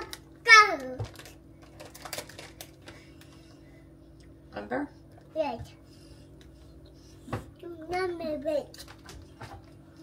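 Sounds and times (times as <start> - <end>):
low steady hum: 0.0 - 10.0
plastic bag crinkling: 1.0 - 3.3.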